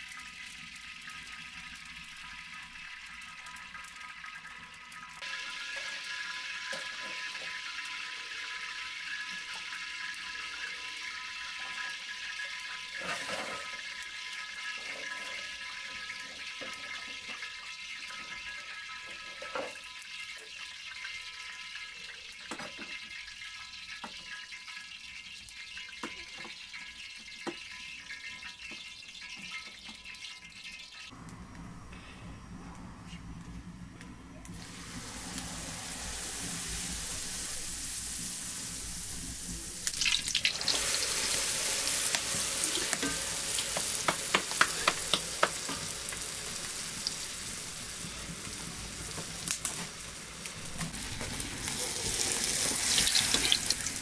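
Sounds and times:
fire crackles and pops: 0:00.0 - 0:06.1, 0:32.7 - 0:54.0
wood fire hissing: 0:00.0 - 0:21.0, 0:31.1 - 0:54.0.

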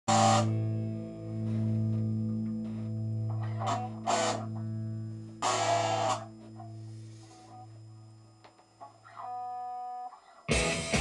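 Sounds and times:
electric guitar chord ringing: 0:00.1 - 0:11.0.

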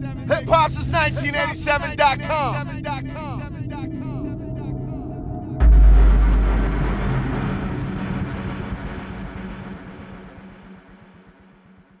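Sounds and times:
deep cinematic boom: 0:05.4 - 0:12.0.

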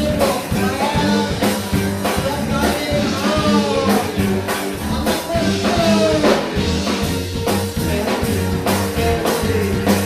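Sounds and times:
live rock band playing: 0:00.0 - 0:10.0
pitch-bending lead guitar line: 0:00.0 - 0:10.0
steady drum beat: 0:00.0 - 0:10.0.

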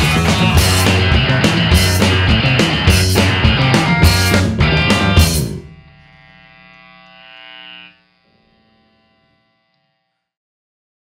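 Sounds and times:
electric guitar and bass chord: 0:00.0 - 0:09.4.

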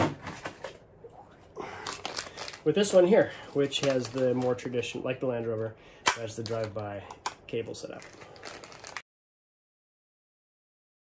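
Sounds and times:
paper packaging rustling: 0:01.7 - 0:04.8, 0:07.8 - 0:09.0.

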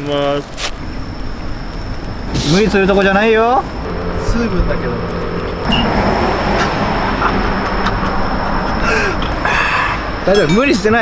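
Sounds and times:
vehicle rushing by: 0:02.3 - 0:10.3
low steady hum: 0:03.6 - 0:09.3.

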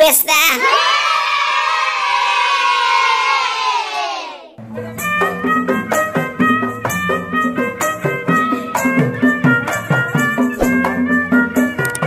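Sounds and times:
children cheering: 0:00.6 - 0:04.5
music: 0:04.6 - 0:12.0.

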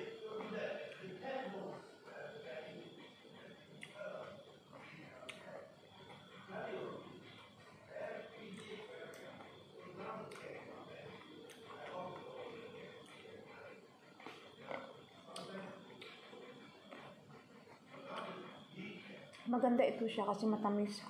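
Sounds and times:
muffled murmur of voice: 0:00.0 - 0:21.0.

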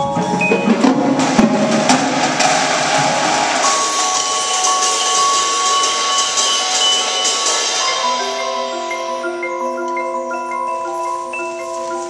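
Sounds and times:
drum strikes: 0:00.0 - 0:10.2
cymbal wash: 0:00.0 - 0:11.2
mallet keyboard notes: 0:00.0 - 0:12.0.

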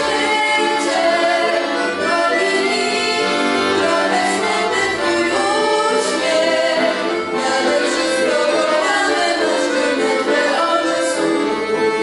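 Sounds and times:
young voices singing: 0:00.0 - 0:11.5
piano accordions: 0:00.0 - 0:12.0.

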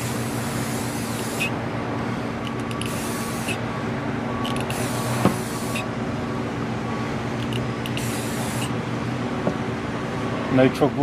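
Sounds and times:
aerosol spray can hissing: 0:00.0 - 0:01.6, 0:02.8 - 0:03.6, 0:04.6 - 0:05.9, 0:07.8 - 0:08.7.

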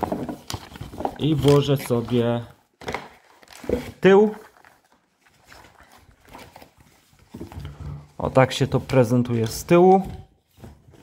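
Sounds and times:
card binder handling: 0:00.0 - 0:07.8.

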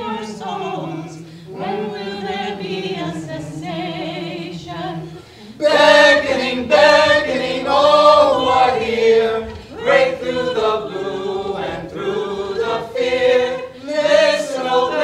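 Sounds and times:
choir singing a cappella: 0:00.0 - 0:15.0.

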